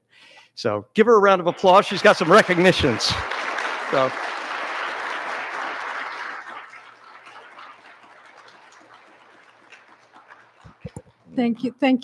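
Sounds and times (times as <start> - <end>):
audience applauding: 1.5 - 11.4.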